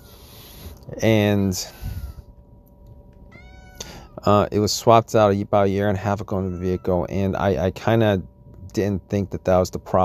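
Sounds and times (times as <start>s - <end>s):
cat meowing: 1.9s - 2.2s, 3.3s - 4.2s, 6.3s - 7.1s.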